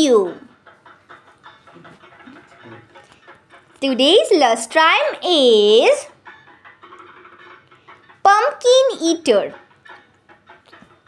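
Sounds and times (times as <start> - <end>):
high-pitched altered voice narrating: 0.0 - 0.5, 3.8 - 6.2, 8.3 - 9.6.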